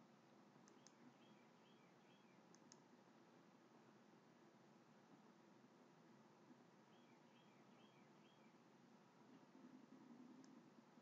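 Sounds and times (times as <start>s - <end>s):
computer mouse click: 0.6s - 1.0s, 2.5s - 2.9s, 10.4s - 10.6s.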